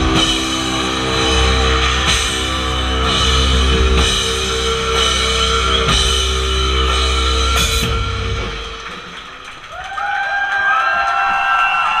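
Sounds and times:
live rock band playing: 0:00.0 - 0:09.5.

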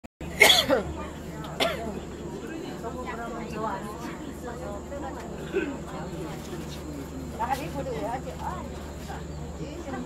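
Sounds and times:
person coughing: 0:00.4 - 0:00.8.

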